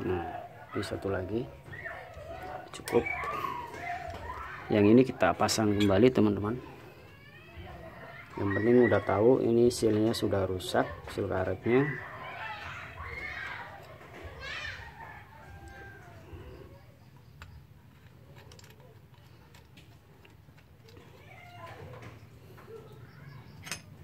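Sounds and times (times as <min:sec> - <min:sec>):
faint distant voices: 0:00.0 - 0:24.0.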